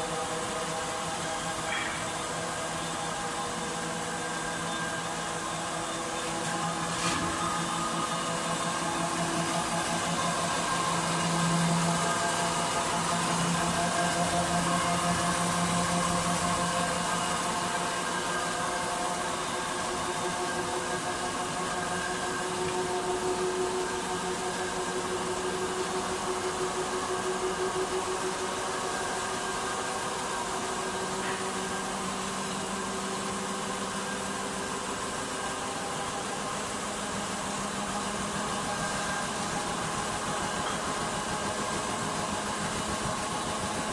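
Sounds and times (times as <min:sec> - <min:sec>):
machine hum with steady tones: 0:00.0 - 0:43.9.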